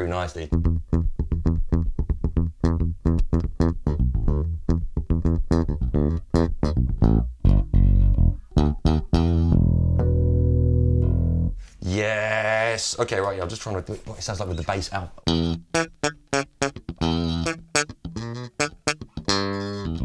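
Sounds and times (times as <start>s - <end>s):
funk bass guitar line: 0.5s - 11.7s, 15.2s - 20.0s.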